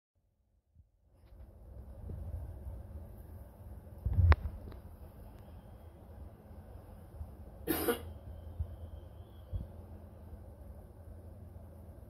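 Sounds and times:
short cough-like burst: 0:07.6 - 0:08.2.

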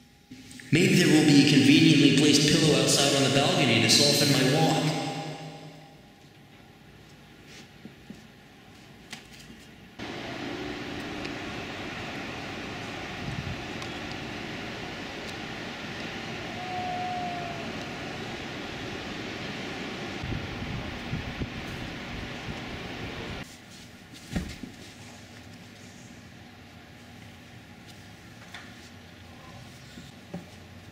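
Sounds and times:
distant machinery: 0:10.0 - 0:23.4.

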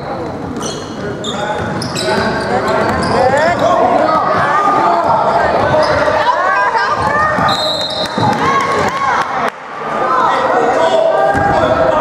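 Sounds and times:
sneakers squeaking on court: 0:00.0 - 0:04.0, 0:05.3 - 0:06.2
voices of players and spectators: 0:00.0 - 0:12.0
high whistle: 0:07.5 - 0:08.2.

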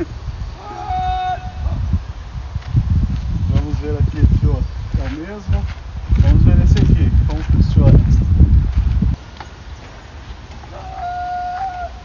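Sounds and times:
wind and handling on microphone: 0:00.0 - 0:12.0
bird call: 0:10.7 - 0:12.0.

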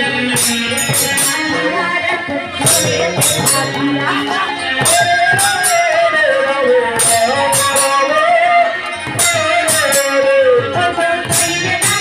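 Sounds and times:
hand drums: 0:00.0 - 0:12.0
woman singing: 0:00.0 - 0:12.0.

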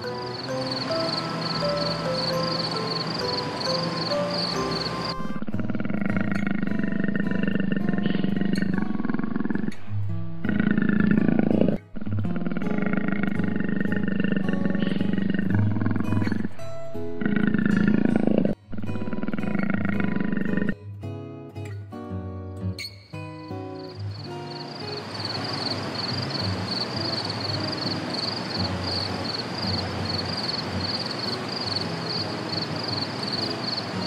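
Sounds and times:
big cat growling: 0:05.2 - 0:20.8.

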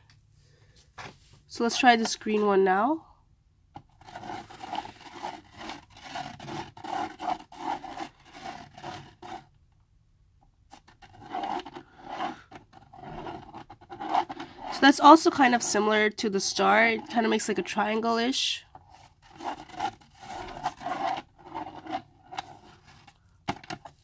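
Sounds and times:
pen scratching on paper: 0:04.0 - 0:09.5, 0:10.7 - 0:16.0, 0:18.9 - 0:23.1.

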